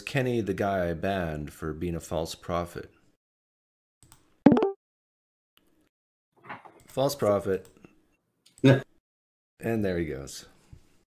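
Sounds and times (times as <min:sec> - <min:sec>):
short pitched blip: 0:04.5 - 0:04.8.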